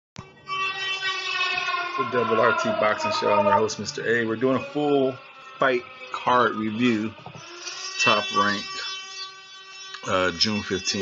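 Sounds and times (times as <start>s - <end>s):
sustained chord: 2.0s - 6.8s.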